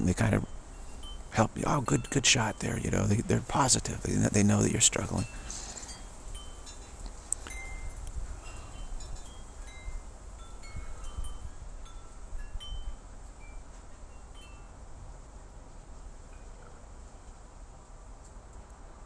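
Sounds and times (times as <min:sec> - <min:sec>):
chimes ringing lightly: 0:00.0 - 0:14.8.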